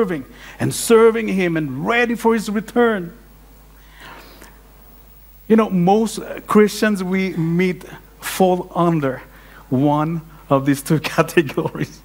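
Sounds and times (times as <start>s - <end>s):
steady low hum: 0.0s - 12.0s
faint breath: 0.3s - 0.6s, 3.8s - 4.7s, 9.3s - 9.7s.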